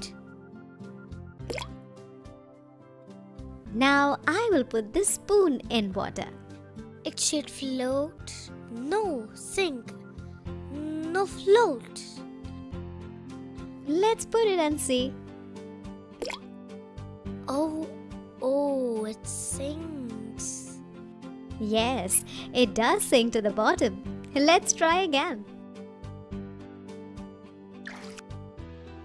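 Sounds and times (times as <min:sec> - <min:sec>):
quiet background music: 0:00.0 - 0:29.0
cartoon water plop: 0:01.4 - 0:01.8, 0:16.2 - 0:16.5, 0:27.8 - 0:28.3.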